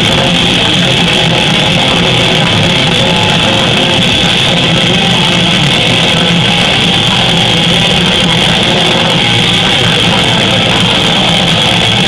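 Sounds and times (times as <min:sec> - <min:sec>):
bass guitar: 0:00.0 - 0:12.0
distorted electric guitars: 0:00.0 - 0:12.0
drums: 0:00.0 - 0:12.0.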